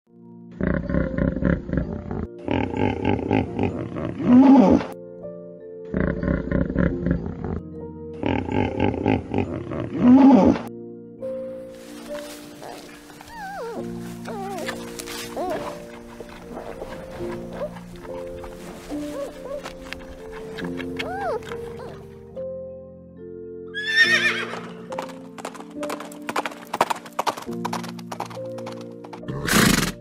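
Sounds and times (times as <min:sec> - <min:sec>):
background music held notes: 0:00.1 - 0:30.0
hippopotamus grunting and honking: 0:12.5 - 0:22.1.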